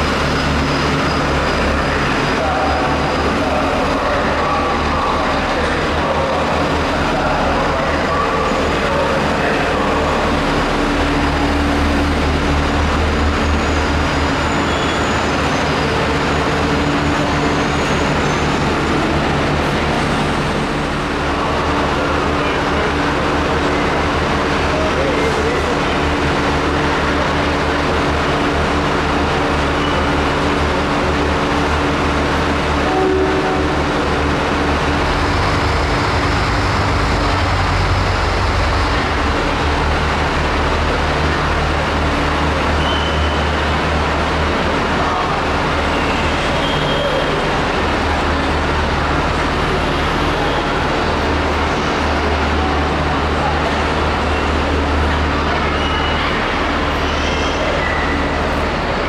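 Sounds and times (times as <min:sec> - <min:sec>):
train mechanical drone: 0:00.0 - 0:59.0.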